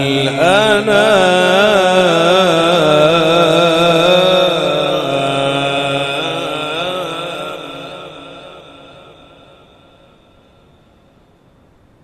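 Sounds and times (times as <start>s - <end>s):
man reciting melodically: 0.0s - 9.8s.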